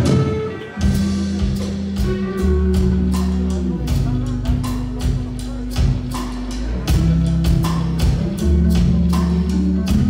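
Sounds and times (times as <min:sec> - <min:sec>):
bass notes: 0:00.0 - 0:10.0
drum kit beat: 0:00.0 - 0:10.0
electric guitars: 0:00.0 - 0:10.0.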